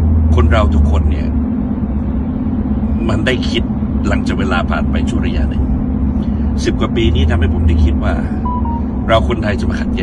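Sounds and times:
car cabin rumble: 0:06.8 - 0:10.0.

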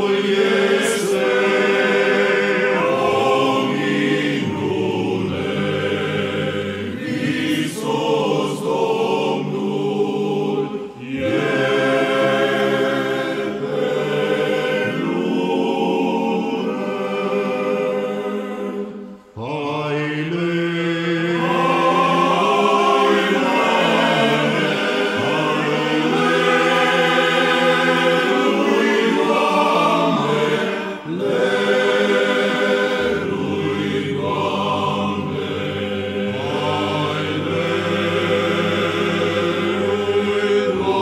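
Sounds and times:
men's choir singing a cappella: 0:00.0 - 0:41.0.

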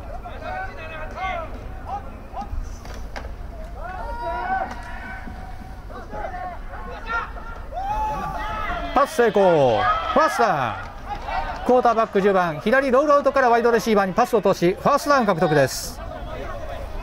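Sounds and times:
voices shouting and calling out: 0:00.0 - 0:17.0.

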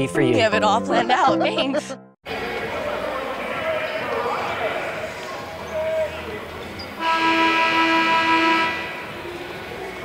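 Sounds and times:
loud steady multi-pitch tone: 0:07.0 - 0:09.3.

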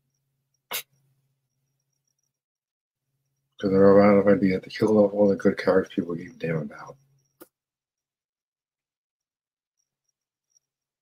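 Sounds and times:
faint low hum: 0:03.0 - 0:07.4.

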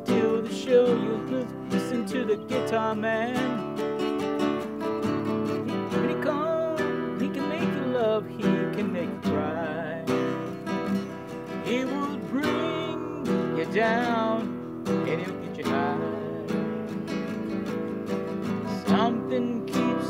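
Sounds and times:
acoustic guitar strumming: 0:00.0 - 0:20.0.

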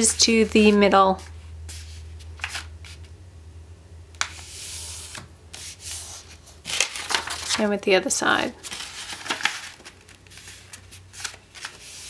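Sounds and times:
paper crackling: 0:00.0 - 0:03.1, 0:04.2 - 0:07.8, 0:08.5 - 0:12.0
paper rustling: 0:00.1 - 0:03.0, 0:04.2 - 0:07.8, 0:08.6 - 0:12.0.

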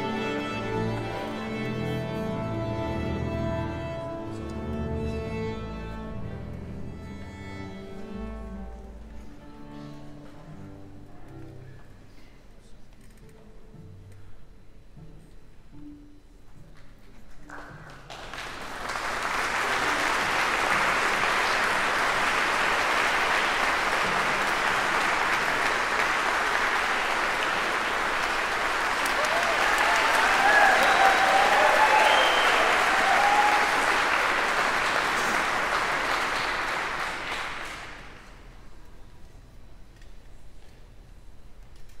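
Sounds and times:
audience applause: 0:17.5 - 0:38.5.

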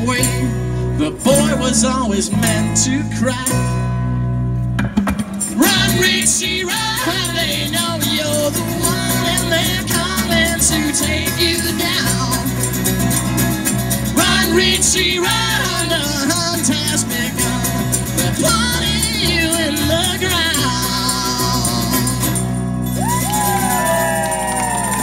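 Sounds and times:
strummed acoustic guitars: 0:00.0 - 0:24.5
person singing: 0:05.6 - 0:12.6, 0:14.2 - 0:22.4.

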